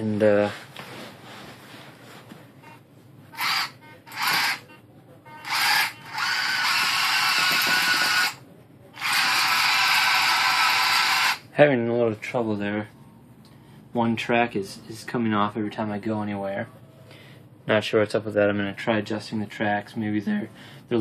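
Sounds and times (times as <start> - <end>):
electric gear motors whining: 3.3 - 4.8, 5.4 - 8.4, 9.0 - 11.4.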